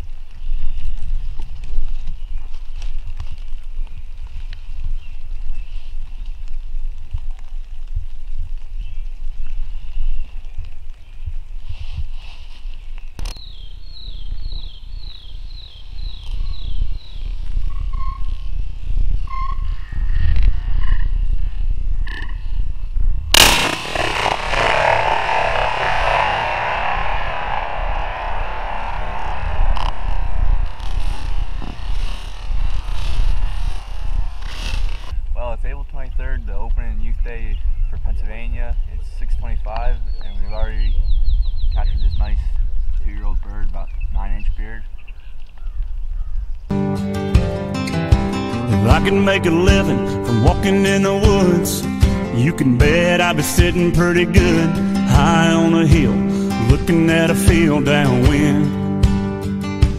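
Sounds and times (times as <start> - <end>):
wind rumbling on microphone: 0.0 - 46.7
bird chirping: 13.1 - 18.3, 40.0 - 42.9
sharp bang: 23.3 - 31.3
music playing: 46.7 - 55.2, 55.8 - 59.9.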